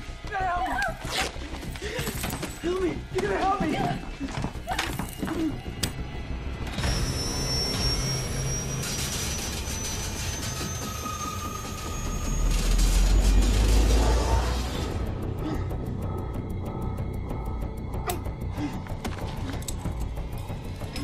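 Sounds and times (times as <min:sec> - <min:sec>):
eerie drone with high tone: 0:06.1 - 0:18.8.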